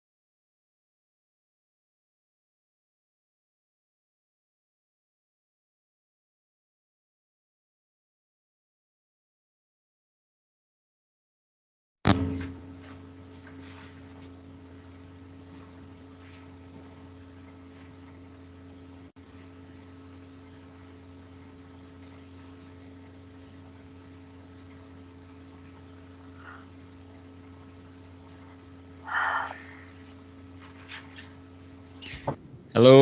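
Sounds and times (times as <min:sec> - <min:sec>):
low electrical hum: 0:12.1 - 0:33.0.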